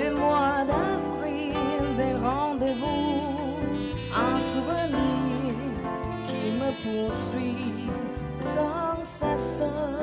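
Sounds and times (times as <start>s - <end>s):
electric bass: 0.0s - 10.0s
live band playing slow ballad: 0.0s - 10.0s.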